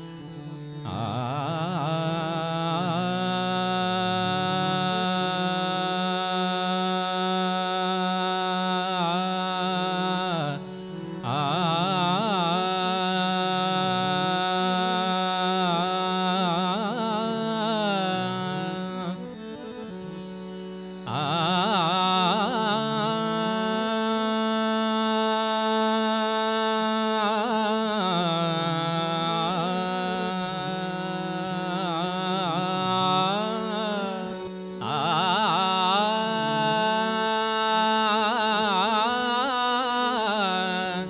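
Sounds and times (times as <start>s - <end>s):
harmonium: 0.0s - 41.0s
man singing devotional music: 0.0s - 41.0s.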